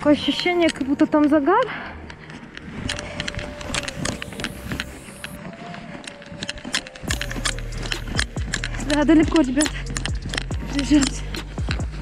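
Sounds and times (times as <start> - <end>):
clothing and gear rustling: 0.0 - 12.0
low rumble: 7.0 - 12.0.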